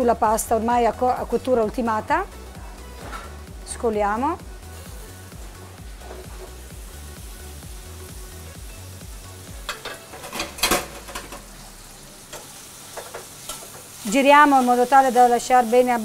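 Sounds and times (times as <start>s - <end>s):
pasta sizzling in a frying pan: 4.2s - 16.0s
utensils knocking against pans: 9.6s - 11.5s.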